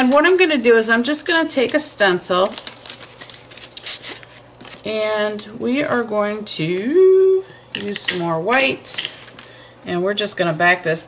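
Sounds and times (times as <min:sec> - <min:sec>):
plastic sheet crinkles: 0:01.5 - 0:05.4
plastic scraping on paper: 0:01.7 - 0:04.9.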